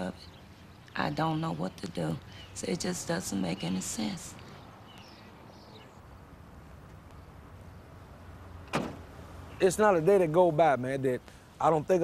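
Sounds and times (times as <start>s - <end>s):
truck door clunk: 8.6s - 9.1s.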